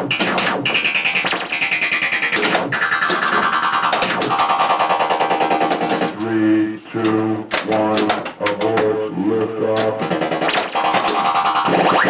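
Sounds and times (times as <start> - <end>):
sharp clicks: 0.0 - 6.3, 7.0 - 12.0
pinball electronic game music: 0.0 - 12.0.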